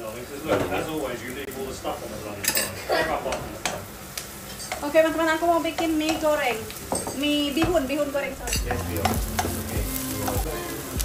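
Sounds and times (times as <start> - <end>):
wok and utensils clattering: 2.2 - 10.9.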